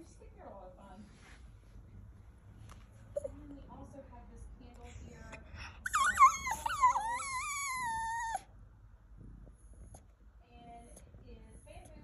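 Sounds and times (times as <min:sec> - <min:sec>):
dog whining: 0:05.8 - 0:08.5.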